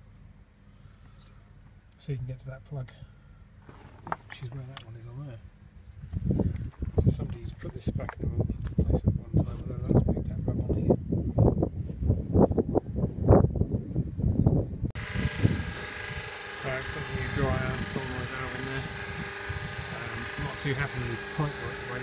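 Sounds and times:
wind buffeting microphone: 5.8s - 22.0s
mechanical hum and hiss: 15.0s - 22.0s.

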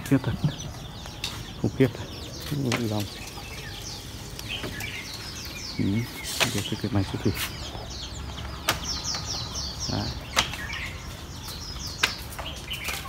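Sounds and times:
birdsong: 0.0s - 13.0s
sharp clicks: 10.3s - 10.8s.

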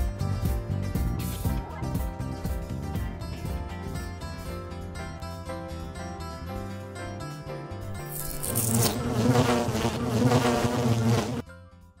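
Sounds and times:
low buzzing tone: 8.2s - 11.4s.

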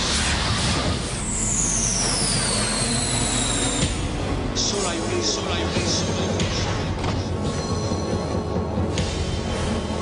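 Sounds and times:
music: 0.0s - 10.0s
high whistling tones sliding down: 0.7s - 4.1s.

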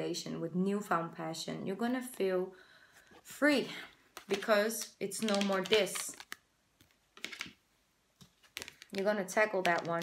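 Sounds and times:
cards clicking and flicking: 4.1s - 7.6s, 8.4s - 10.0s.

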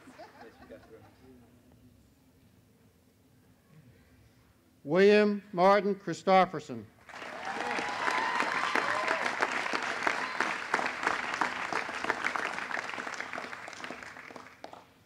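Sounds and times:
audience applauding: 7.0s - 15.0s
voices cheering: 7.1s - 13.7s.

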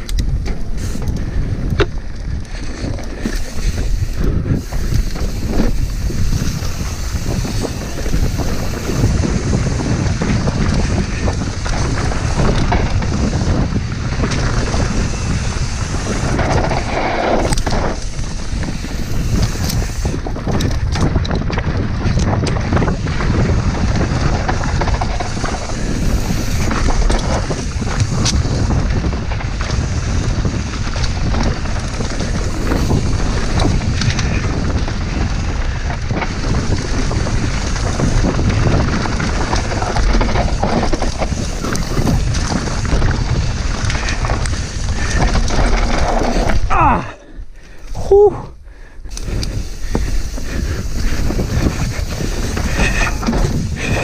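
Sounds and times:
bike knocks and rattles: 0.0s - 47.1s, 49.1s - 54.0s
tyres rumbling on dirt: 0.0s - 54.0s
wind buffeting microphone: 0.0s - 54.0s.

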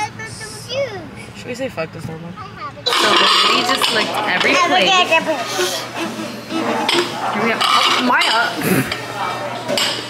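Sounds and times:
plate clattering on table: 2.9s - 4.6s.

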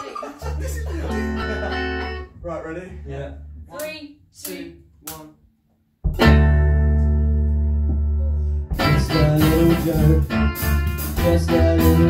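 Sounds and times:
electric guitars sustained chord: 0.6s - 3.3s.

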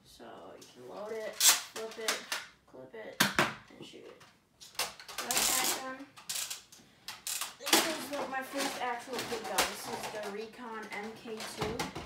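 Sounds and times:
plastic toys clattering on table: 4.7s - 12.0s.

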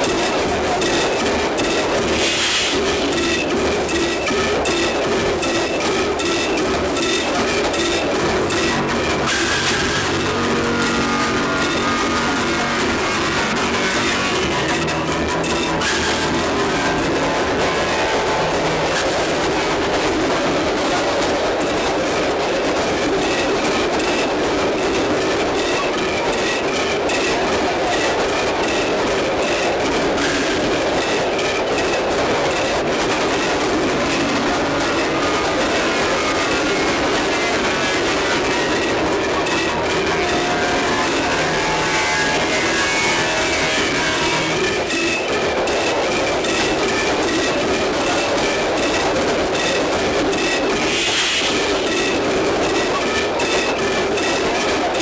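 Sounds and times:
train rumbling on rails: 0.0s - 55.0s.

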